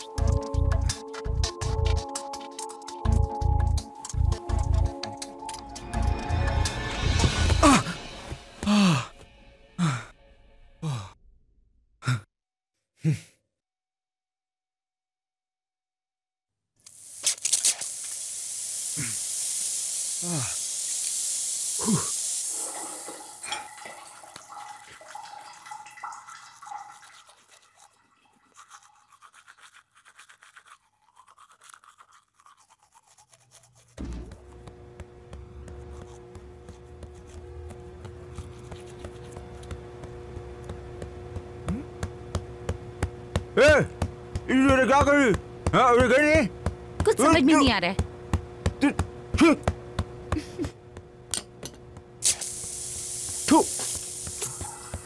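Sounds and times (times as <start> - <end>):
toothbrush scrubbing teeth: 0.0 - 5.8, 26.1 - 40.8, 52.3 - 55.0
person exclaiming: 8.6 - 9.1, 20.2 - 20.6, 21.8 - 22.1, 47.1 - 48.0, 48.8 - 49.7, 53.5 - 53.8
steady high hiss: 16.9 - 22.6, 52.2 - 55.0.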